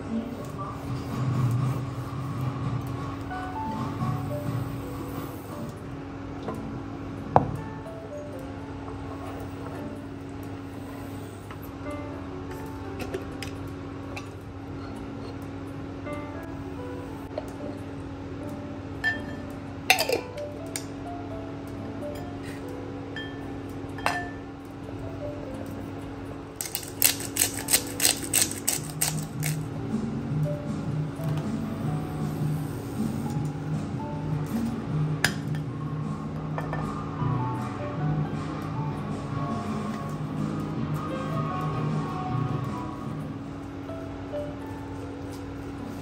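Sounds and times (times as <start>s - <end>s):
background music: 0.0s - 46.0s
clinks against glass bowl: 19.0s - 20.3s, 24.0s - 24.4s
pepper grinder clicking: 26.6s - 29.6s.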